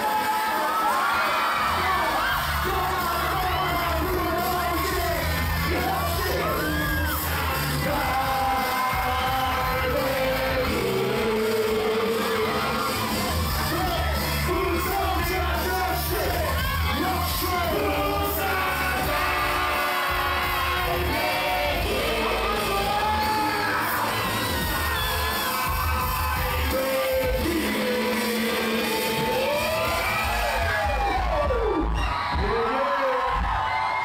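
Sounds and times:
crowd yelling: 0:00.0 - 0:34.0
rappers shouting and singing: 0:00.0 - 0:34.0
heavy bass beat: 0:01.7 - 0:32.6.

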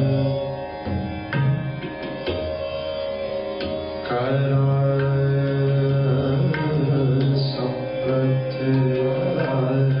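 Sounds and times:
bowed string instruments: 0:00.0 - 0:10.0
tabla playing: 0:00.0 - 0:10.0.

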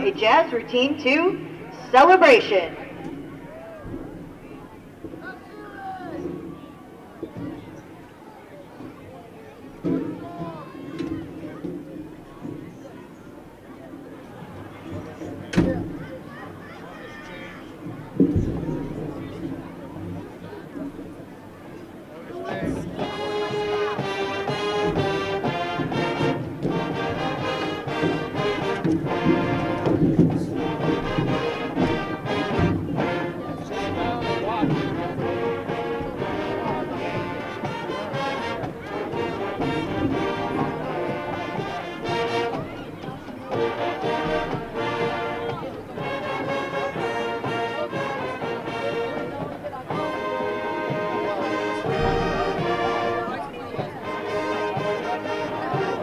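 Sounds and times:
marching band playing brass tune: 0:00.0 - 0:05.4, 0:22.3 - 0:56.0.

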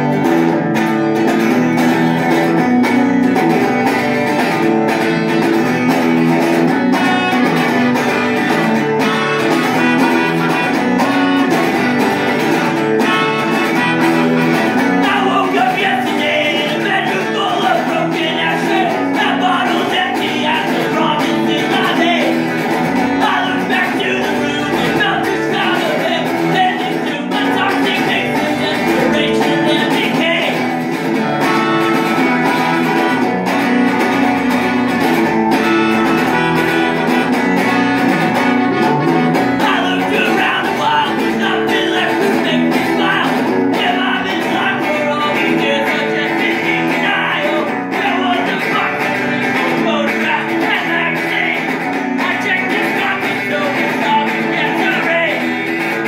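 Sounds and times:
strummed electric guitar: 0:00.0 - 0:56.0
man singing into a microphone: 0:06.9 - 0:31.0, 0:39.4 - 0:56.0.

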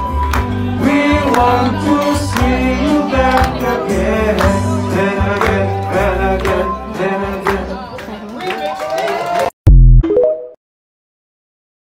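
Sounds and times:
deep bass hit: 0:09.7 - 0:10.1
rising electronic jingle notes: 0:09.7 - 0:10.6.

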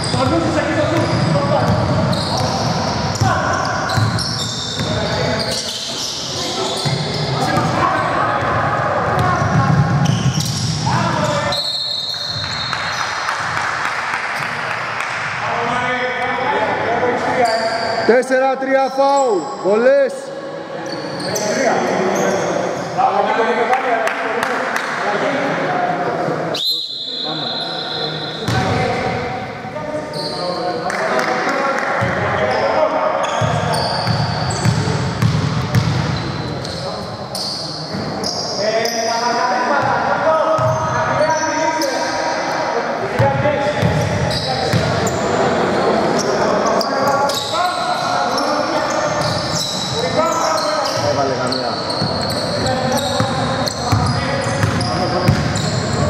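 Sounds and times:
players' voices echoing: 0:00.0 - 0:56.0
basketball bouncing on wooden floor: 0:54.6 - 0:55.6.

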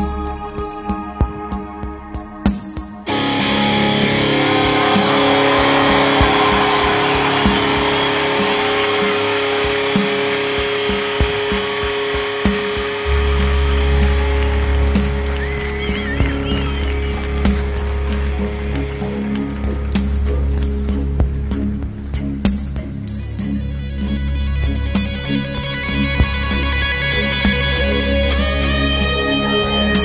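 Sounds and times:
guitar: 0:00.0 - 0:30.0
drum machine pattern: 0:02.1 - 0:19.0
synthesizer chords: 0:03.0 - 0:23.0
audience clapping and cheering: 0:03.1 - 0:22.6
deep bass: 0:03.1 - 0:30.0.

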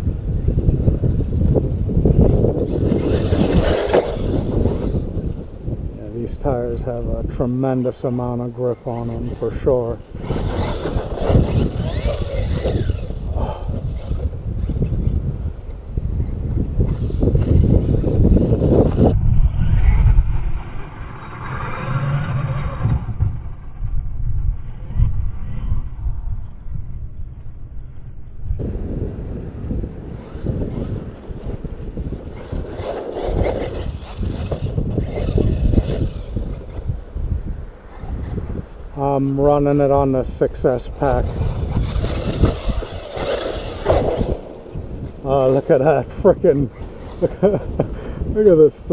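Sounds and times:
wind buffeting microphone: 0:00.0 - 0:48.9
distant electric motor whining: 0:08.8 - 0:15.1, 0:28.6 - 0:38.9, 0:40.8 - 0:47.8.

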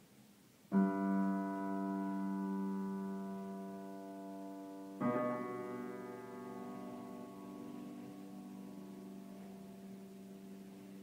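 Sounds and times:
piano chord ringing: 0:00.7 - 0:11.0.

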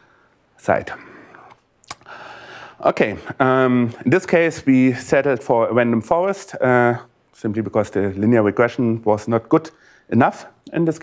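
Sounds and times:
faint breathy noise: 0:00.0 - 0:03.4, 0:09.7 - 0:10.2
man speaking: 0:00.6 - 0:02.0, 0:02.8 - 0:11.0.

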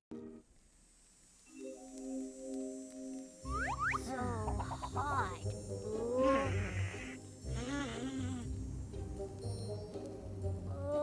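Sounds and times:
light background music: 0:01.5 - 0:11.0
cartoon wordless vocal sounds: 0:03.5 - 0:08.5.

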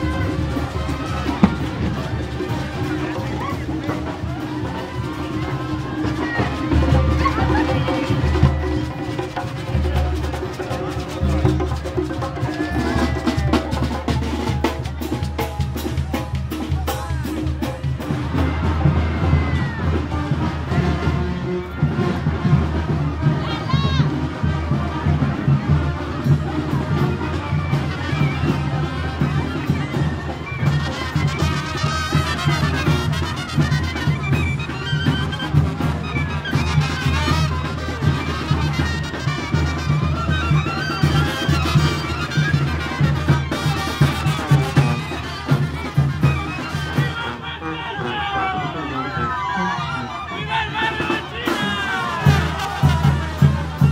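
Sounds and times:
bass drum beat: 0:00.0 - 0:23.3
crowd voices: 0:00.0 - 0:53.9
marching brass band playing: 0:00.0 - 0:53.9.

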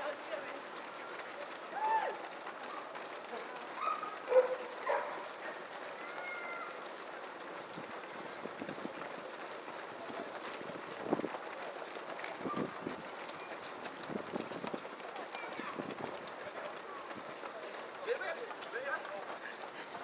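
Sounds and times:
crowd footsteps on wet road: 0:00.0 - 0:20.0
people shouting: 0:01.7 - 0:02.3.

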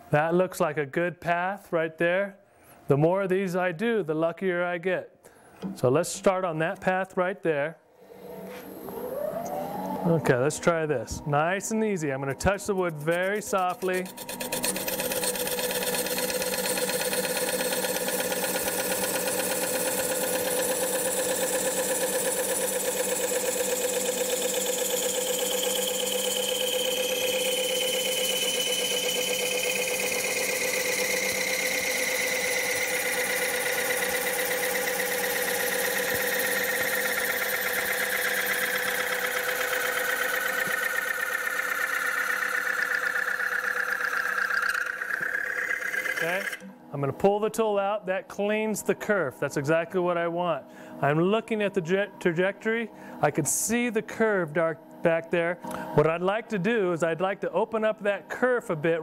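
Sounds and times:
lathe running: 0:08.0 - 0:46.7
blade cutting wood: 0:12.2 - 0:46.7.

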